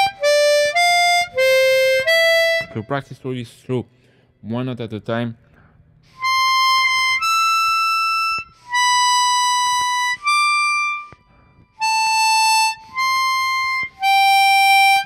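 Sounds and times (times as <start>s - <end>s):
harmonica notes: 0.0s - 3.2s, 6.0s - 15.0s.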